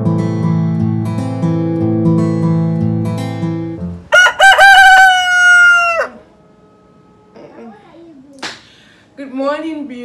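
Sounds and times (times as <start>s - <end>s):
acoustic guitar music: 0.0s - 4.1s, 6.1s - 8.2s
rooster crowing: 4.1s - 6.3s.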